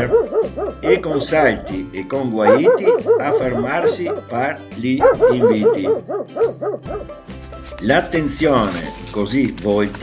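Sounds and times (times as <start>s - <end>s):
background music: 0.0s - 10.0s
small dog yelping: 2.5s - 4.2s, 5.0s - 7.1s.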